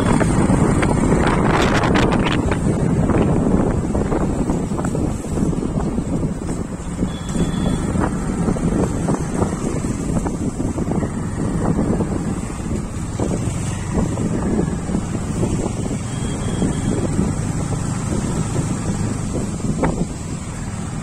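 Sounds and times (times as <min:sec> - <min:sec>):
motorcycle engine: 0:00.0 - 0:21.0
road noise: 0:00.0 - 0:21.0
wind buffeting microphone: 0:00.0 - 0:21.0.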